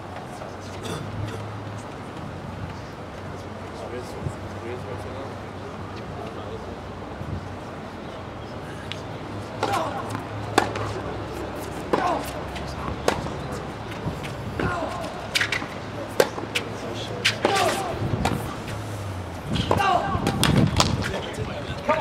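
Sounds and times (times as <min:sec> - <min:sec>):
players grunting: 0:09.6 - 0:10.9, 0:11.9 - 0:12.9
tennis ball hit by rackets: 0:09.6 - 0:18.7, 0:19.6 - 0:21.2.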